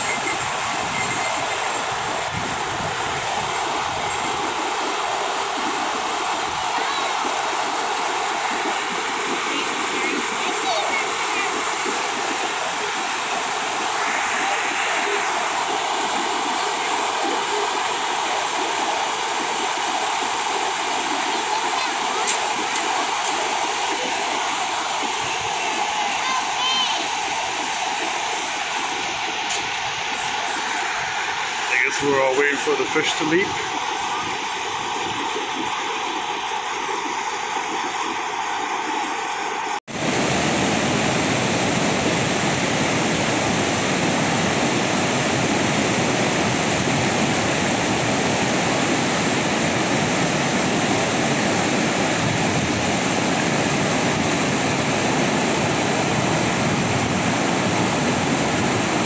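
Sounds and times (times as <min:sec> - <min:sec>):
river rapids rushing over rocks: 0:00.0 - 0:59.0.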